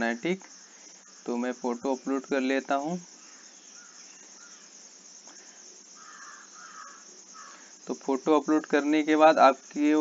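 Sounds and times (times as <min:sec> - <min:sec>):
steady high-pitched hiss: 0:00.0 - 0:10.0.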